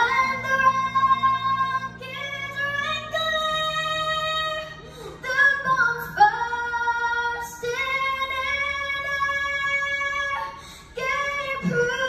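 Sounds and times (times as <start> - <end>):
girl singing into a microphone: 0.0 - 12.0
girl breathing: 4.8 - 5.2.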